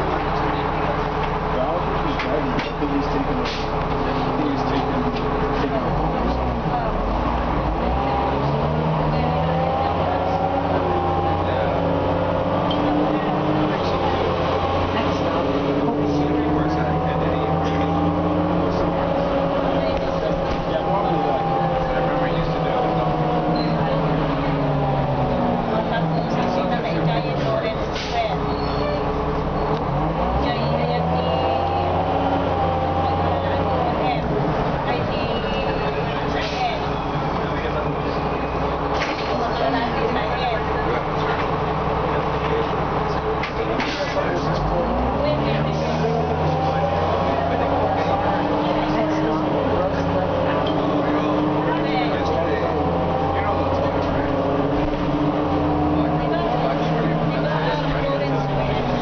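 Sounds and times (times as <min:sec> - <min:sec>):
bus diesel engine: 0:00.0 - 0:59.0.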